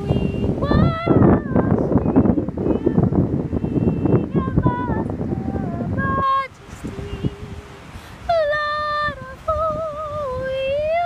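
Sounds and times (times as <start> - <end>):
woman singing a cappella: 0.0 - 11.0.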